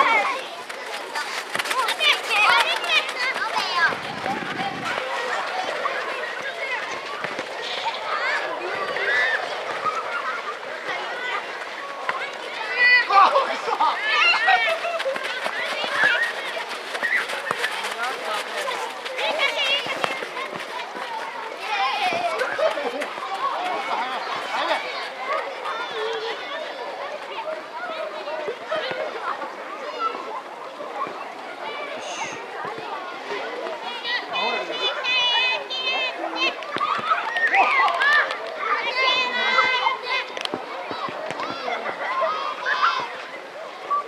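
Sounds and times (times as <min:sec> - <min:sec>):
children calling and shouting: 0:00.0 - 0:44.0.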